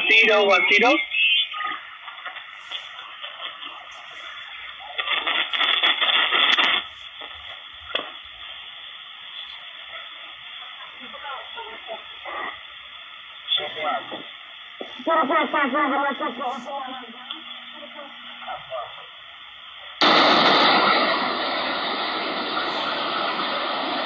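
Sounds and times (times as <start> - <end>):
radio hiss and band noise: 0.0 - 24.0
radio signal burst: 0.0 - 24.0.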